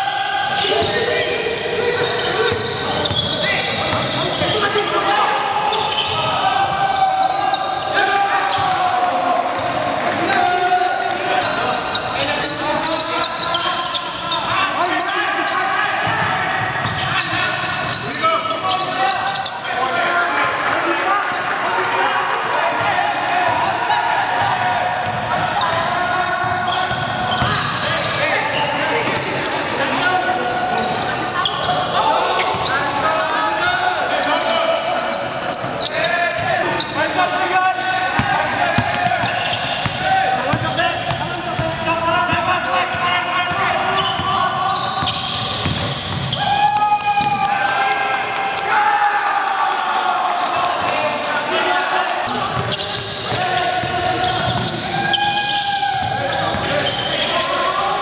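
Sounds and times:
players calling and chattering: 0.0s - 58.0s.

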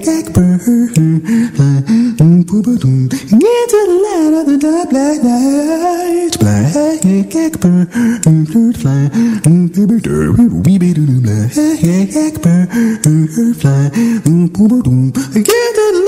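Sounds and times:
man singing a cappella: 0.0s - 16.0s
sharp percussive clicks: 6.4s - 9.8s, 15.4s - 15.7s.

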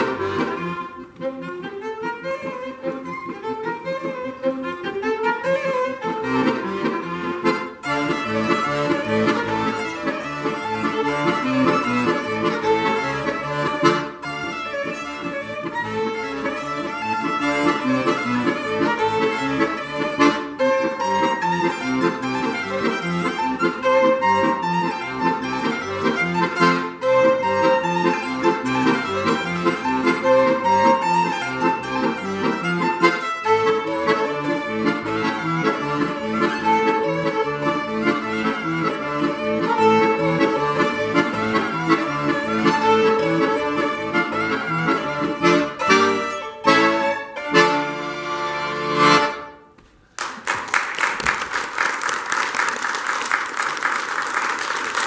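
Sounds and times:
violin and accordion duet: 0.0s - 49.7s.

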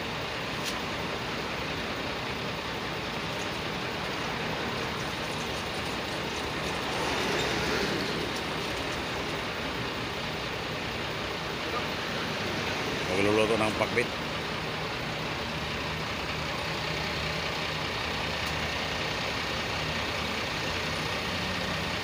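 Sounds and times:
steady traffic noise: 0.0s - 22.0s.

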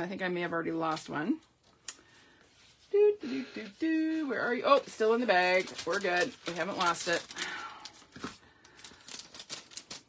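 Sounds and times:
plastic bag crinkling: 4.2s - 10.0s.

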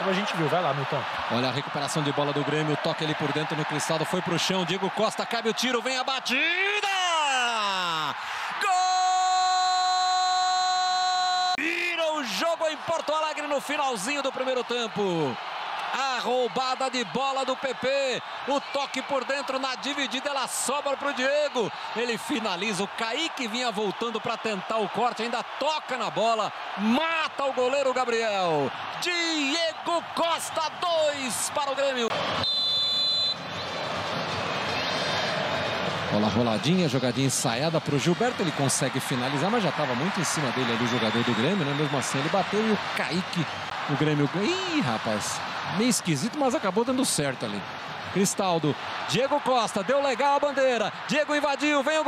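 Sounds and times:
crowd cheering: 0.0s - 52.0s
commentator shouting goal: 1.7s - 32.1s
referee whistle: 32.3s - 33.4s.

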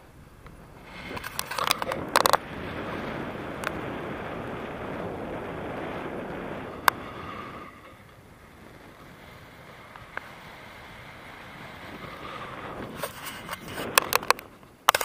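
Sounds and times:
wind rushing over microphone: 0.0s - 15.0s
camera mount clicking and rattling: 1.2s - 2.4s, 13.0s - 15.0s.

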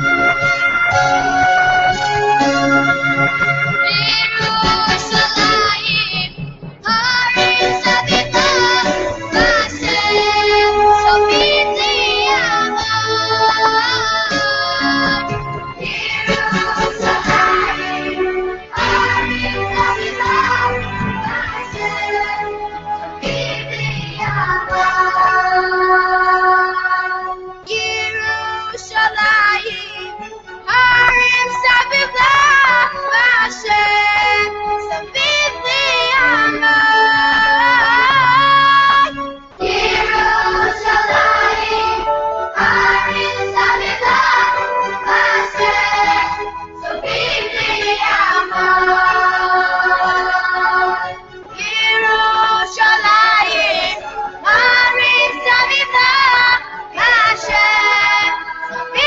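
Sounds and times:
high voices singing a song: 0.0s - 59.0s
instrumental backing music: 0.0s - 59.0s
high voice singing with vibrato: 3.8s - 22.4s, 35.1s - 42.0s.

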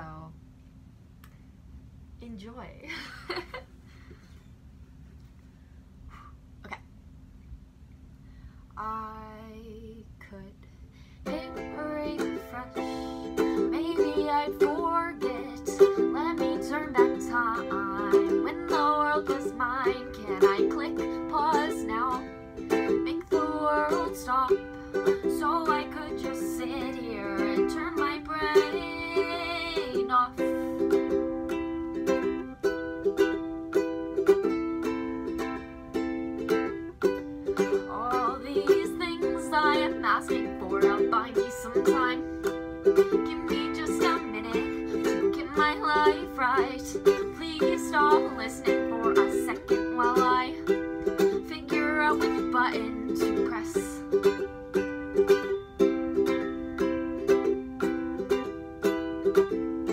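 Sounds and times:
ukulele strumming chords: 11.2s - 59.9s.

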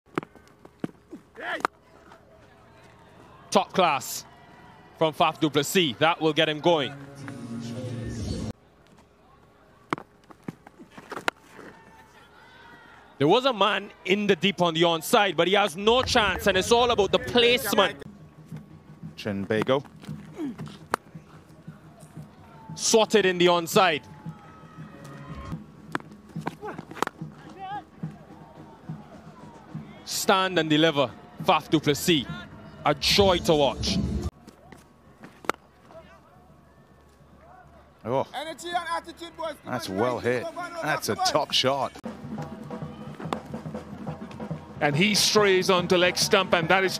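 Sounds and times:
faint crowd hum: 0.1s - 46.9s.

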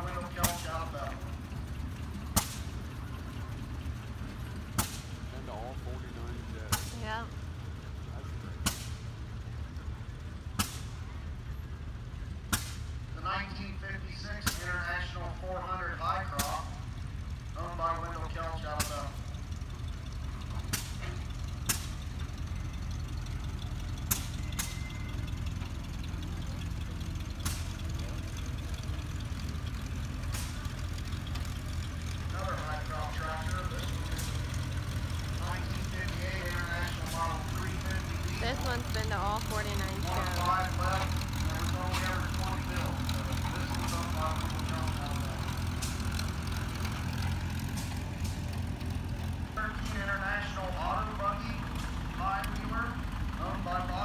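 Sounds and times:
old vehicle engines running: 0.0s - 54.0s.

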